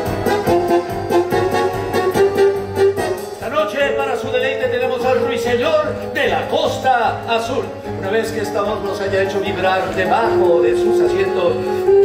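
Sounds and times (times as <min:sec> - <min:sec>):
stage musical dance music: 0:00.0 - 0:12.0.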